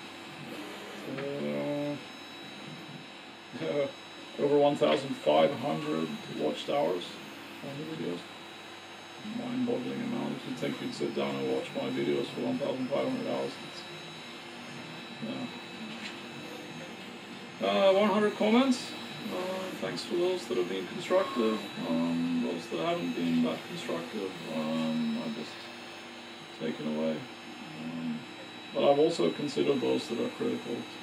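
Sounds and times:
faint electrical hum: 0.0 - 31.0
man humming mmm: 1.0 - 2.0, 27.6 - 28.3
soft voiced murmur: 1.0 - 2.0, 27.6 - 28.3
high whine: 1.0 - 8.3, 9.2 - 31.0.

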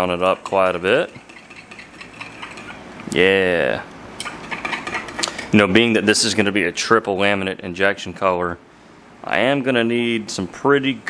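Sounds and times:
metal spoon scraping glass cup: 0.3 - 2.9, 4.2 - 5.3.

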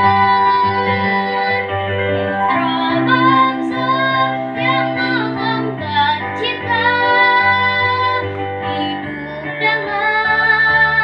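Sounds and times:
girl singing: 0.0 - 1.7, 2.3 - 11.0
piano accompaniment: 0.0 - 11.0.

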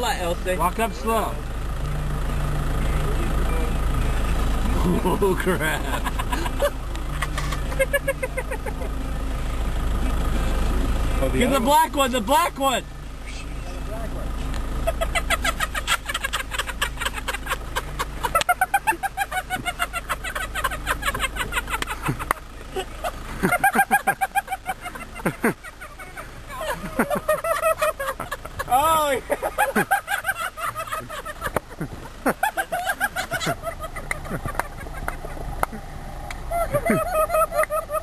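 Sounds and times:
vehicle engine droning: 0.0 - 38.0.

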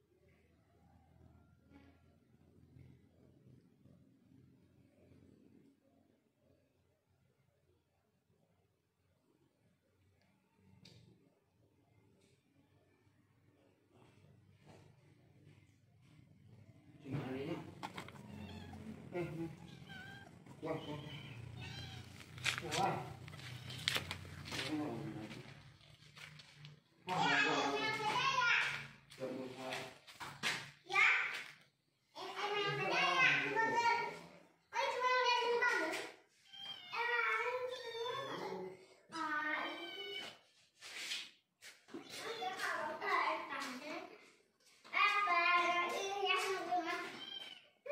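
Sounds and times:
kittens meowing: 17.8 - 24.6, 39.6 - 40.4, 47.1 - 47.8.

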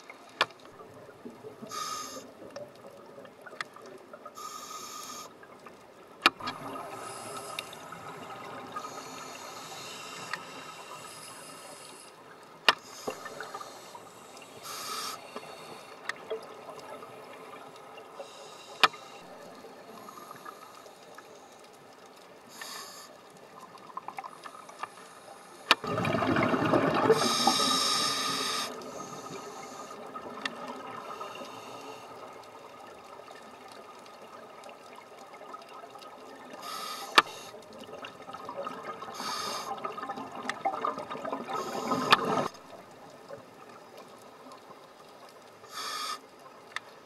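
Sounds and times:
scuba regulator hisses: 1.7 - 2.3, 4.4 - 5.3, 8.8 - 12.1, 12.8 - 16.0, 22.5 - 23.1, 27.1 - 30.0, 36.6 - 37.6, 39.2 - 39.7, 45.7 - 46.2
gurgling exhaled bubbles underwater: 25.8 - 27.8, 37.6 - 43.9.

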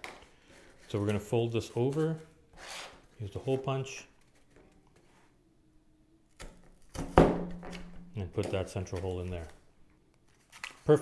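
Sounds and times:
handling cardboard: 0.0 - 5.4, 6.7 - 9.7.

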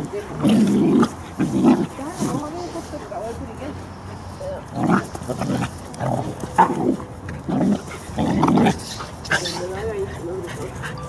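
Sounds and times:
puppies growling: 0.0 - 3.3, 4.5 - 11.0.

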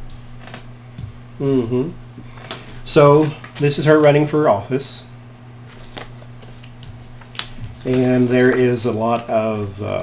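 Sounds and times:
cards rustling: 5.7 - 9.6.

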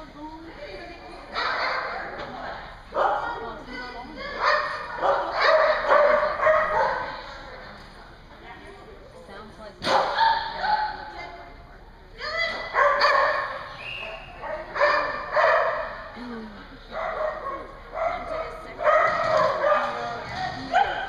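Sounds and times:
small dog barking: 4.4 - 7.1, 12.8 - 13.5.

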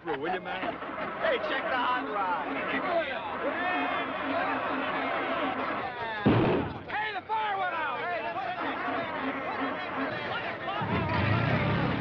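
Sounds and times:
men whooping and jeering: 1.0 - 6.2
loud bang with deep rumble: 6.2 - 6.9.

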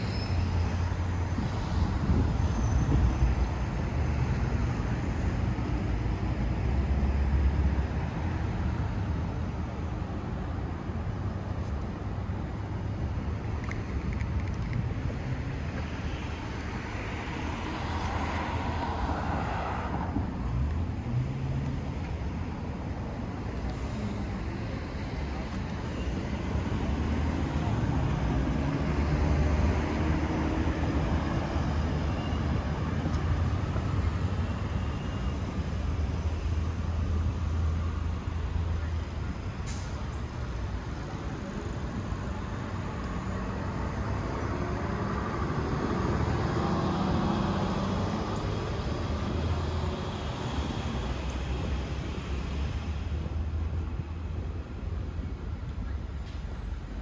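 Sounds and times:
street traffic: 0.0 - 57.0.

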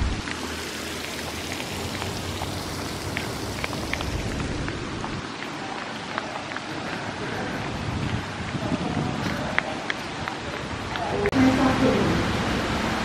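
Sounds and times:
hiss of running water: 0.0 - 5.3.

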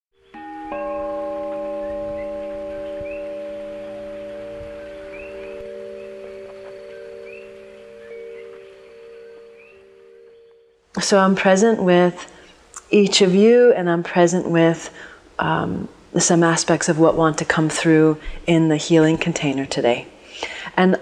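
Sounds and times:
bell-like tones ringing: 0.2 - 10.8.

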